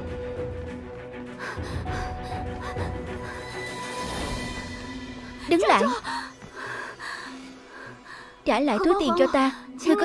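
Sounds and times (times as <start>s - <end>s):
soft background music: 0.0s - 10.0s
woman panting: 1.4s - 3.6s.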